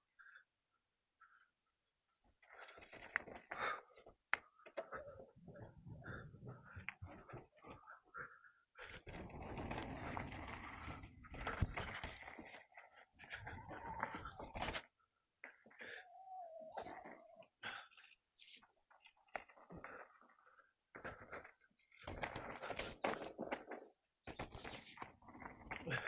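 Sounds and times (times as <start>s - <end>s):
mountain bike rattling on rough trail: 9.0s - 13.0s, 22.0s - 23.6s.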